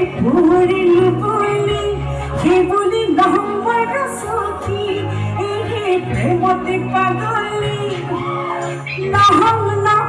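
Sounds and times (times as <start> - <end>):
amplified band accompaniment: 0.0 - 10.0
woman singing into a microphone: 0.0 - 10.0.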